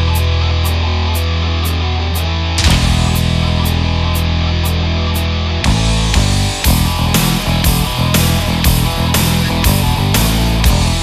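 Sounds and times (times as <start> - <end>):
electric guitars: 0.0 - 11.0
drums keeping a steady beat: 2.6 - 11.0.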